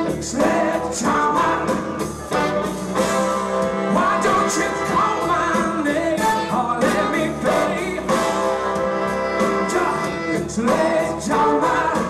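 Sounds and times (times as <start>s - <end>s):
bass guitar: 0.0s - 12.0s
drums: 0.0s - 12.0s
electric guitars: 0.0s - 12.0s
keyboards: 0.0s - 12.0s
lead melody line: 0.0s - 12.0s.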